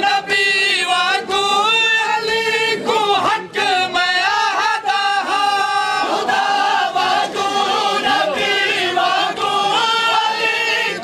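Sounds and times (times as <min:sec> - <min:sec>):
men chanting a lament in chorus: 0:00.0 - 0:11.0.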